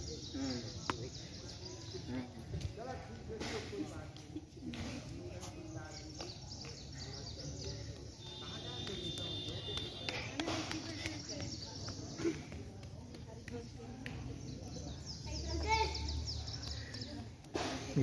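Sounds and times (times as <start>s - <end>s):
children calling and chattering: 0.0s - 18.0s.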